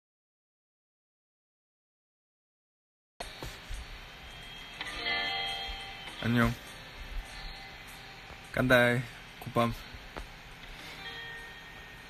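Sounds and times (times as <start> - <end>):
held notes: 3.2 - 12.0
music playing: 3.2 - 12.0.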